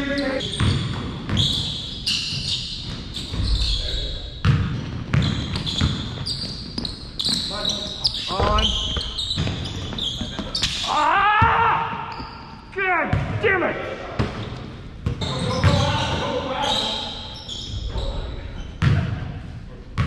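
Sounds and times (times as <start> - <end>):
sneakers squeaking on floor: 0.0 - 13.4, 14.2 - 19.0
basketball bouncing: 0.6 - 1.8, 4.4 - 7.4, 8.4 - 10.8
players shouting: 10.8 - 13.9.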